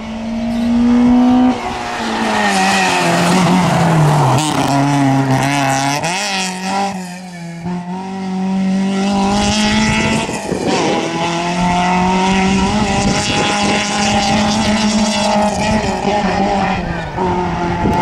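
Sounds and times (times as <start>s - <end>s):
rally car engine accelerating: 0.0s - 18.0s.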